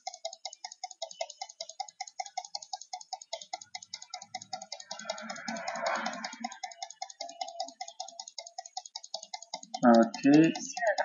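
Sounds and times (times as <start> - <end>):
rapid even clicking: 0.0 - 11.0.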